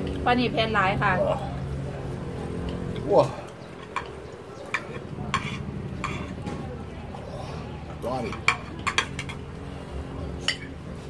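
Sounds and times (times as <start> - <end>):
cutlery clinking on plates: 2.7 - 6.7, 8.2 - 9.4, 10.4 - 10.8.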